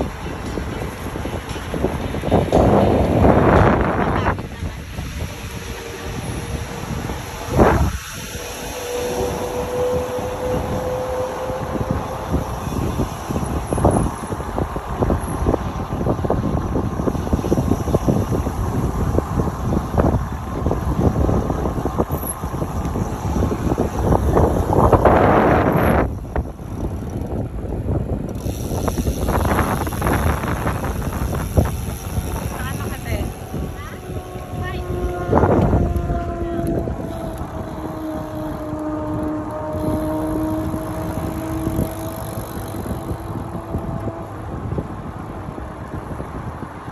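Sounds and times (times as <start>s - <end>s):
wind rushing over microphone: 0.0s - 46.9s.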